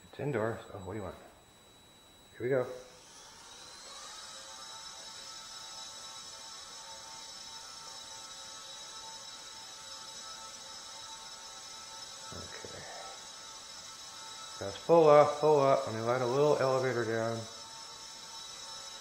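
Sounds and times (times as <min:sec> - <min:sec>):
small propeller motor whining: 0:00.1 - 0:19.0.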